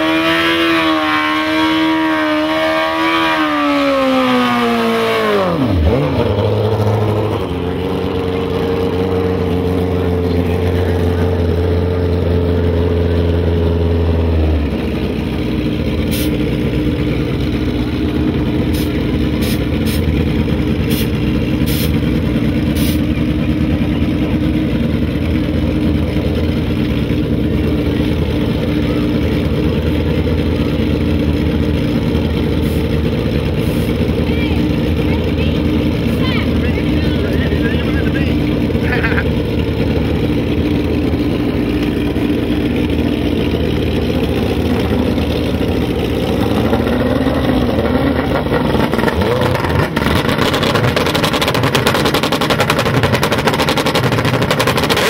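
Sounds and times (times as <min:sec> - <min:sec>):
motorcycle engine revving: 0:00.0 - 0:55.0
motorcycle engines idling: 0:05.5 - 0:50.0.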